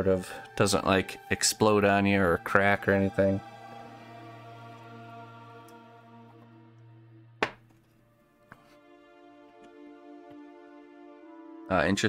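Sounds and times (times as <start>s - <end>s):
quiet music with long held notes: 0.0s - 12.0s
mug knocking on a desk: 7.4s - 7.6s.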